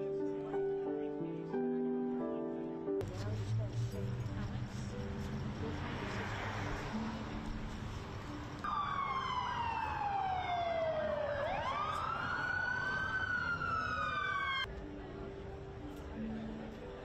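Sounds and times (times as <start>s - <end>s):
emergency siren wailing: 8.7s - 14.7s.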